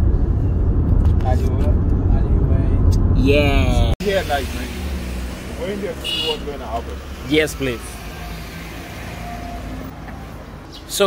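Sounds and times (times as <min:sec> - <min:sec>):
motor vehicle rumbling: 0:00.0 - 0:11.0.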